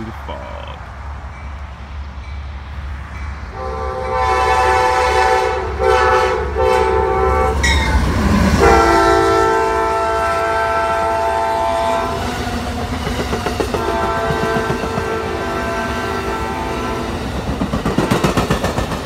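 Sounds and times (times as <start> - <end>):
train cars rumbling on rails: 0.0 - 19.0
locomotive air horn blasts: 3.5 - 8.0, 8.6 - 12.3, 13.8 - 17.2.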